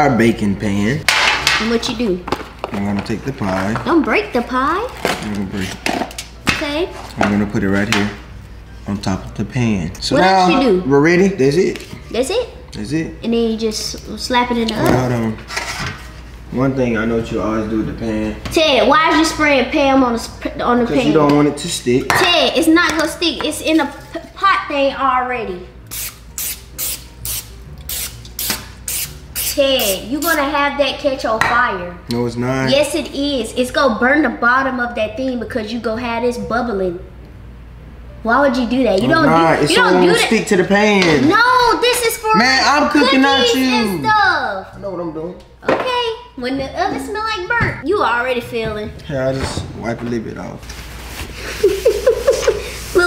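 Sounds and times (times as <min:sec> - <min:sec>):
aerosol spray hissing: 0:25.9 - 0:30.4
woman laughing: 0:51.4 - 0:52.8.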